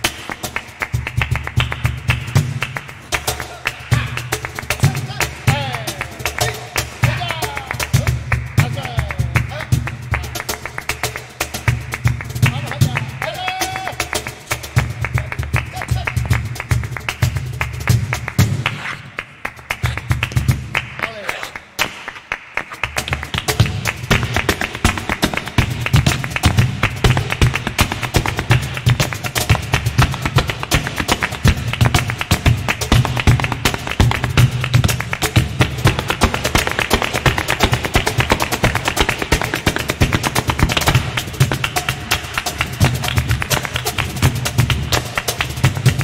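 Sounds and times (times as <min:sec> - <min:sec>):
cajon beat: 0:00.0 - 0:46.0
dancer's shoes striking stage floor: 0:00.0 - 0:46.0.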